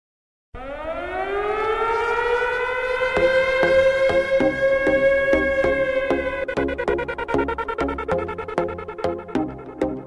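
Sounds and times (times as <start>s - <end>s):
air-raid siren wailing: 0.6s - 10.0s.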